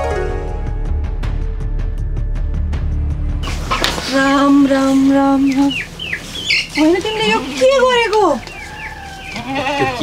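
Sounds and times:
goat bleating: 0:07.0 - 0:10.0.

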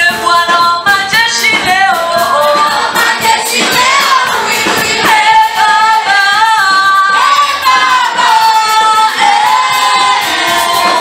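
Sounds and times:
women singing together: 0:00.0 - 0:11.0.

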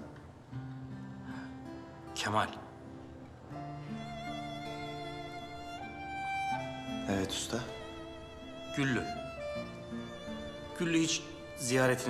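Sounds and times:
soft guitar music: 0:00.0 - 0:12.0.

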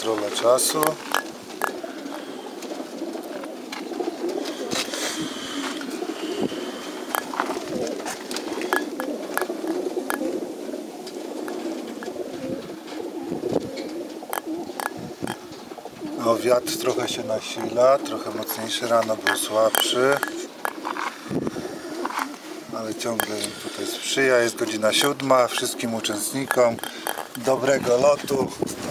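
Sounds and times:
pigeons cooing: 0:00.0 - 0:28.9
small clicks and knocks: 0:07.1 - 0:07.5, 0:08.7 - 0:10.3, 0:14.3 - 0:15.4, 0:19.2 - 0:21.1, 0:26.4 - 0:27.5.

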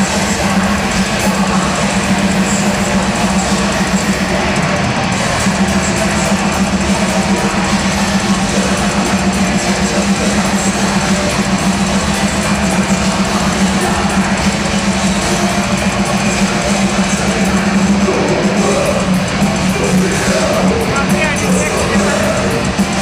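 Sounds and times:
live metal band playing: 0:00.0 - 0:23.0.

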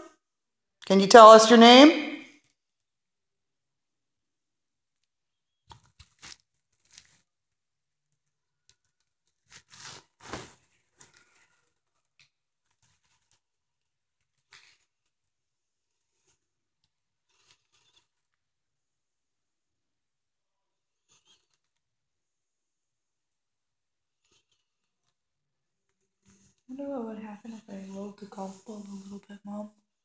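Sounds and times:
faint rustling and scraping: 0:05.8 - 0:07.4, 0:08.1 - 0:18.5, 0:21.0 - 0:21.9, 0:23.3 - 0:25.3, 0:25.9 - 0:29.6.

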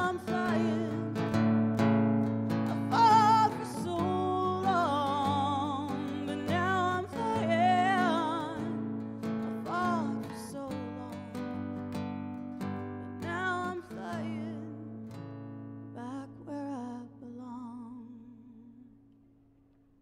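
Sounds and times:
strummed acoustic guitar: 0:00.0 - 0:17.1
woman singing folk song: 0:00.0 - 0:19.1.

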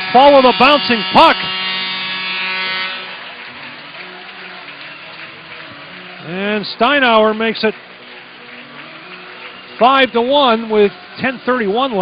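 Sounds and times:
arena background noise: 0:00.0 - 0:12.0
buzzing hum: 0:00.0 - 0:12.0.

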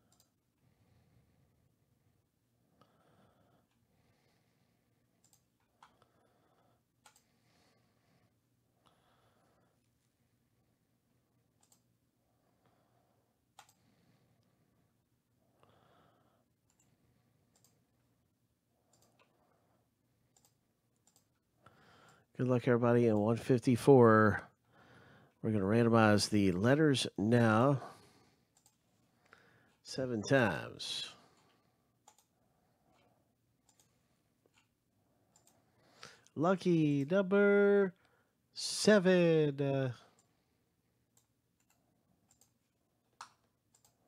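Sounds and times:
computer mouse clicks: 0:00.0 - 0:00.4, 0:05.2 - 0:06.1, 0:07.0 - 0:07.3, 0:11.6 - 0:11.9, 0:13.5 - 0:13.8, 0:16.6 - 0:17.8, 0:18.9 - 0:19.4, 0:20.3 - 0:21.4, 0:28.5 - 0:28.8, 0:31.4 - 0:32.3, 0:32.9 - 0:35.6, 0:41.1 - 0:44.0.

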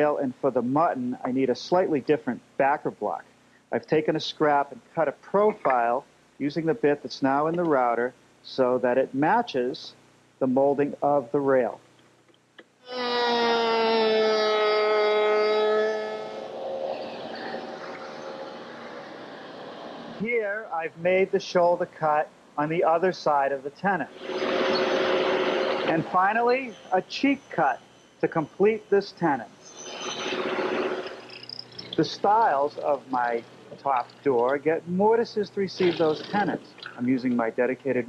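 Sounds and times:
router whining: 0:12.8 - 0:20.2, 0:24.1 - 0:28.2, 0:29.6 - 0:32.0
router bit cutting wood: 0:12.9 - 0:20.2, 0:24.1 - 0:27.9, 0:29.7 - 0:32.0.

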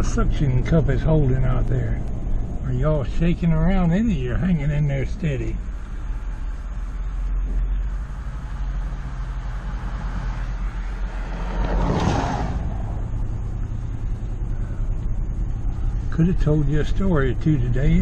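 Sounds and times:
engine and tyre rumble: 0:00.0 - 0:18.0
rush of noise: 0:09.8 - 0:15.2.

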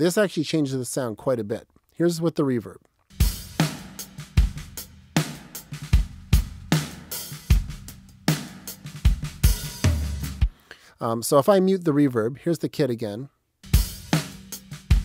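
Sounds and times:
drum kit playing a groove: 0:03.1 - 0:10.6, 0:13.6 - 0:15.0.

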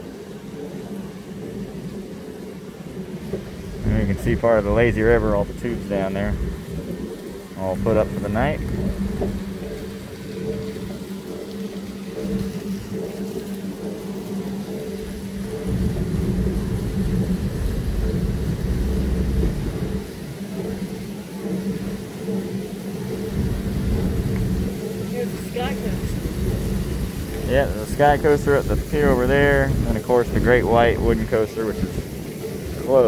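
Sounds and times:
ride car rumbling on track: 0:00.0 - 0:33.0
steady hum: 0:00.0 - 0:33.0.

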